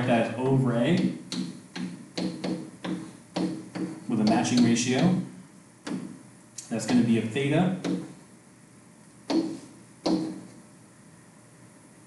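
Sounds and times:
stylus tapping on tablet screen: 0:01.0 - 0:05.1, 0:07.8 - 0:08.1, 0:09.3 - 0:10.6.

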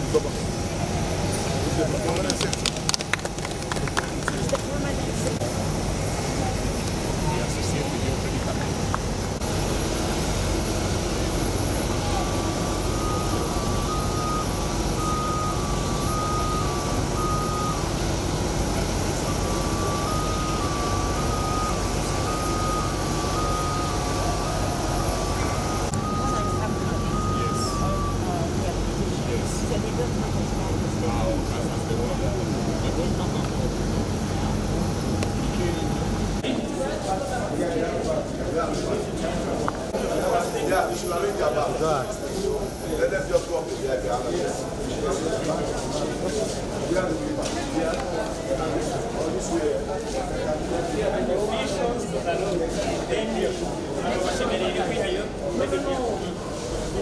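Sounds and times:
loud engine noise: 0:00.0 - 0:36.5
two-tone electronic warning beeper: 0:11.2 - 0:29.2.

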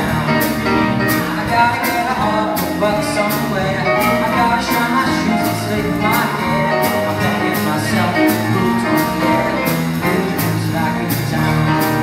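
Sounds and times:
keyboard chords: 0:00.0 - 0:12.0
swing band playing: 0:00.0 - 0:12.0
walking bass: 0:00.0 - 0:12.0.

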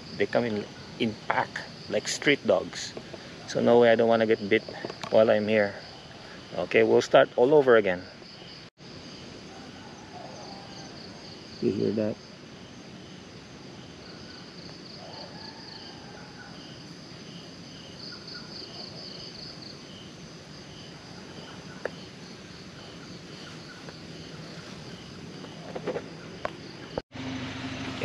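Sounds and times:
crickets chirping: 0:00.0 - 0:27.9.

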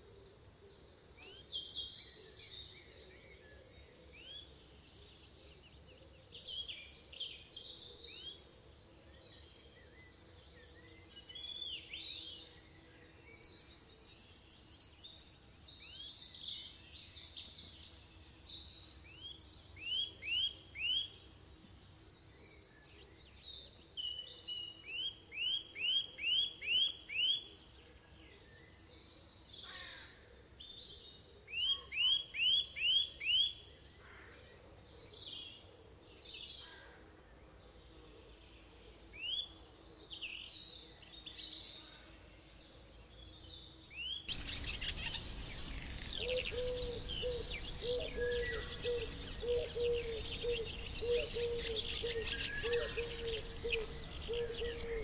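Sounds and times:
birds singing and calling: 0:00.0 - 0:21.2, 0:21.9 - 0:55.0
high bird trills and chirps: 0:44.3 - 0:55.0.

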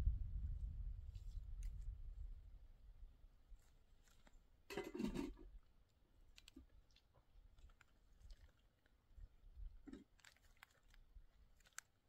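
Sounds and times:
scrape or rustle: 0:03.5 - 0:05.5
faint handling clicks: 0:06.3 - 0:08.9.

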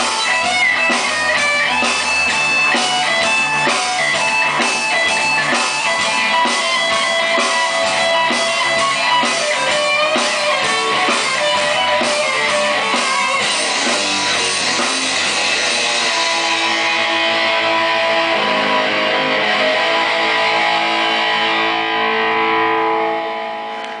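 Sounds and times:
electric guitars strumming chords: 0:00.0 - 0:24.0.

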